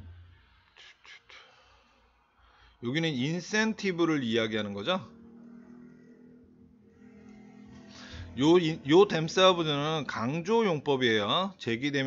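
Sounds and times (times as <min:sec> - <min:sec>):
faint breathy hisses: 0:00.8 - 0:02.8.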